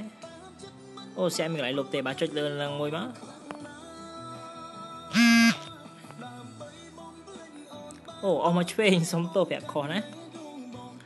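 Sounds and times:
faint background music: 0:00.0 - 0:11.0
buzzy phone notification tone: 0:05.1 - 0:05.6.

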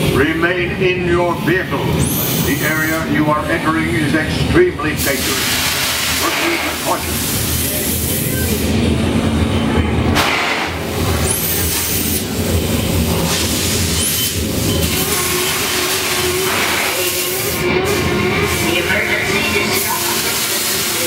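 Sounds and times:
low mechanical rumble: 0:00.0 - 0:21.0
short hissing bursts: 0:05.0 - 0:08.6.

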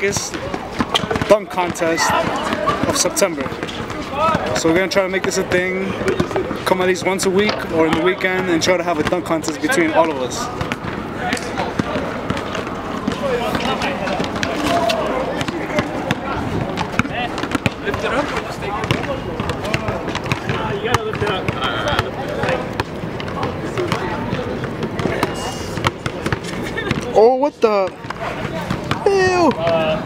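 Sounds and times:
people talking: 0:00.0 - 0:30.0
basketball dribbling on hard court: 0:00.2 - 0:04.6, 0:15.3 - 0:27.2.

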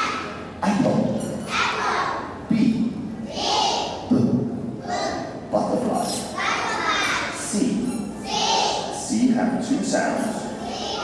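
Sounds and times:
children speaking in chorus: 0:00.0 - 0:00.5, 0:01.3 - 0:02.4, 0:03.2 - 0:04.1, 0:04.8 - 0:05.4, 0:06.3 - 0:09.1, 0:10.3 - 0:11.0.

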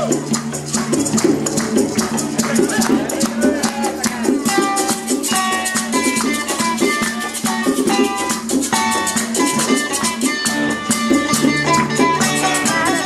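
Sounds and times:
hand drums: 0:00.0 - 0:13.0
maraca rattle: 0:00.0 - 0:13.0
plucked-string melody: 0:00.0 - 0:13.0
strummed accompaniment: 0:00.0 - 0:13.0.

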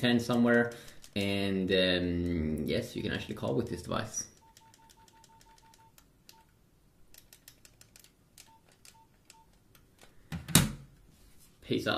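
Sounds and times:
phone keypad beeps: 0:04.4 - 0:06.5, 0:08.4 - 0:09.6.

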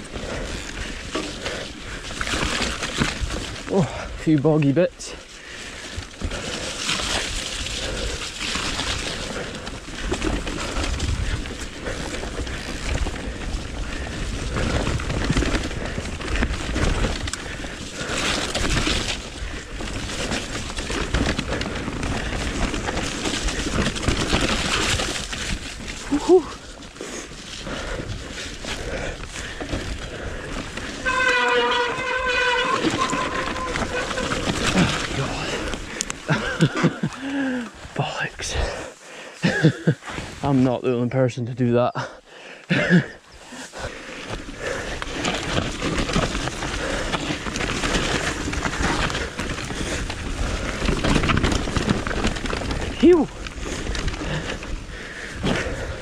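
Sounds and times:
bike rattling: 0:00.0 - 0:56.0
bike tyres rolling over soil: 0:00.0 - 0:56.0
wind rumbling on microphone: 0:05.6 - 0:37.0, 0:43.8 - 0:56.0.

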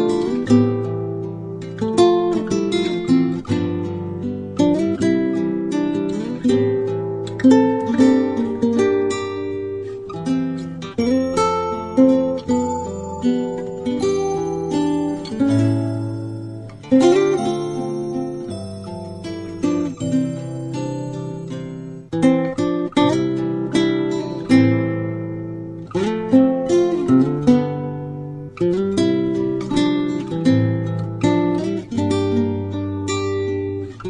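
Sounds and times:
acoustic guitar tune: 0:00.0 - 0:34.0.

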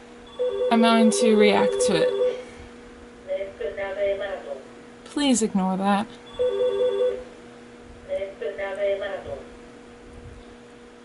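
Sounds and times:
phone ringtone warbling beeps: 0:00.4 - 0:02.5, 0:06.4 - 0:07.2.

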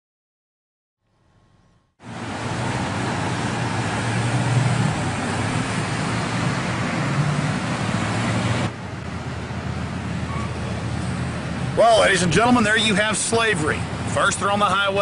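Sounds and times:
car engine and tyre noise: 0:01.4 - 0:15.0.

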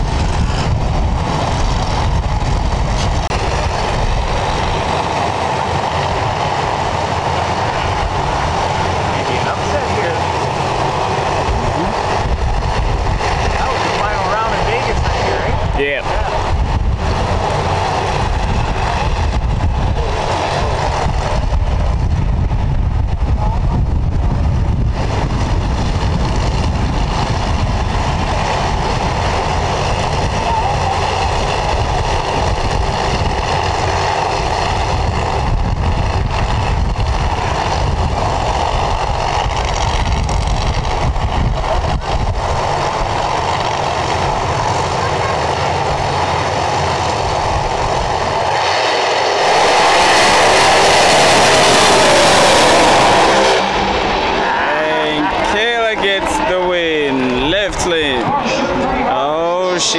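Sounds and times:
race car engines idling loudly: 0:00.0 - 0:59.9.

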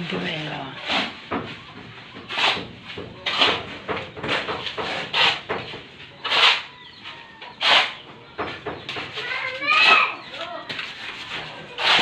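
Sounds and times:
shovel scraping cement mix: 0:00.0 - 0:08.0, 0:09.0 - 0:12.0.

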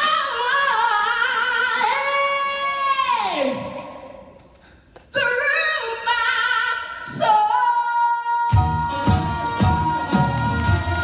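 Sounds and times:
woman singing vocal run: 0:05.2 - 0:11.0.

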